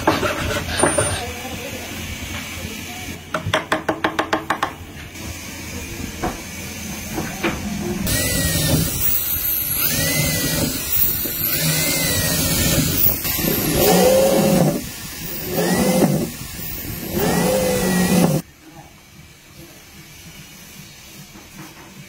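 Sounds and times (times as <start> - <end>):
drill press boring into wood: 8.1 - 18.4.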